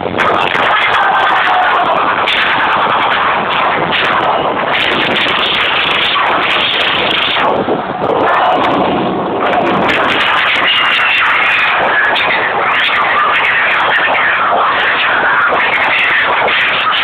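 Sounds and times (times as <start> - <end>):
distorted rave dance music: 0.0 - 17.0
crackling clicks: 0.2 - 17.0.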